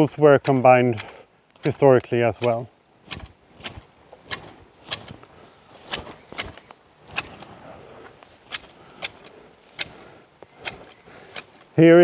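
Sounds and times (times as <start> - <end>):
hedge shears snipping: 0.0 - 11.8.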